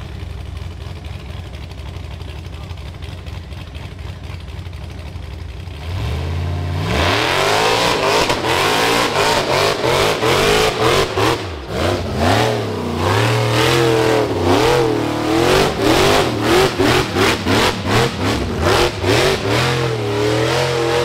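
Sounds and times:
buggy engine revving hard: 5.7s - 21.0s.

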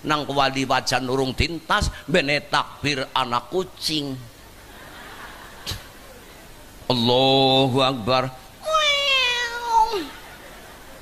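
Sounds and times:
man imitating cat meow: 8.6s - 10.1s.

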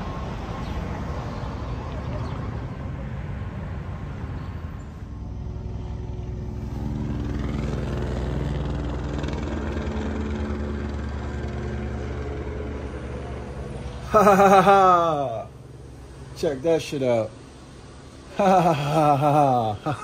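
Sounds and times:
helicopter rotor drone: 0.0s - 20.0s
outdoor street noise: 0.0s - 20.0s.

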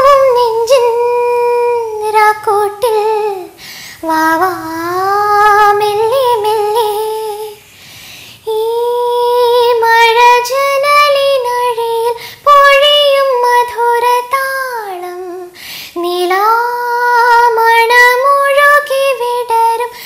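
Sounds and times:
woman singing unaccompanied: 0.0s - 7.7s, 8.4s - 20.0s.

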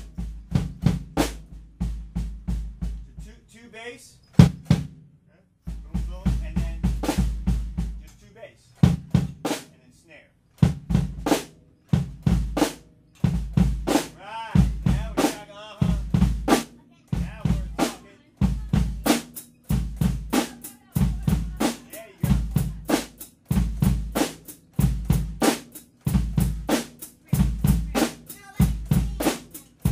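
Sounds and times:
acoustic drum kit groove: 0.0s - 29.9s.

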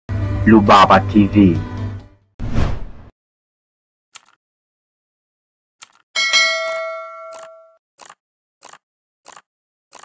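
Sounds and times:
bell ding: 6.2s - 7.8s.

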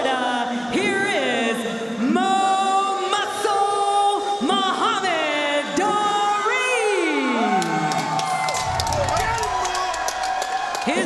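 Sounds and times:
crowd cheering and whooping: 6.6s - 11.0s.

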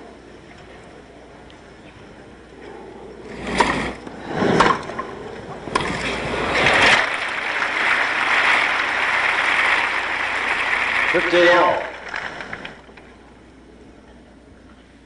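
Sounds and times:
crowd applauding: 6.2s - 13.1s.

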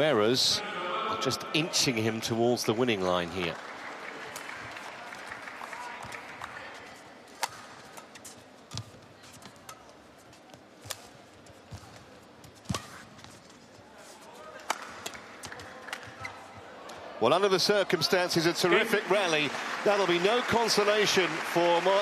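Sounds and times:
crowd noise in hall: 0.0s - 22.0s
racket hitting shuttlecock: 7.3s - 9.9s, 12.6s - 13.4s, 14.5s - 16.3s.

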